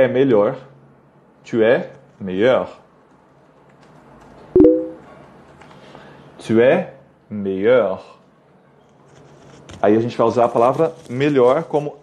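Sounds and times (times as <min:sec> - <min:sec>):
two-pitch electronic tone: 0:04.6 - 0:05.0.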